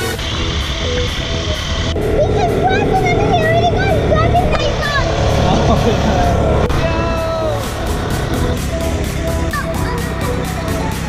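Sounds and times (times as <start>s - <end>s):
buggy rumbling: 0.0s - 11.0s.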